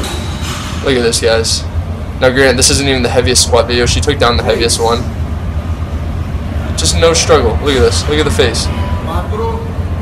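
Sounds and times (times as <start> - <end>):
steady low hum: 0.0 - 10.0
man speaking: 0.9 - 5.1.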